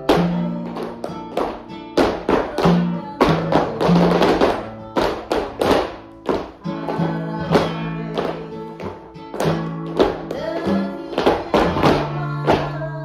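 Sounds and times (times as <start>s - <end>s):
flamenco guitar music: 0.0s - 13.0s.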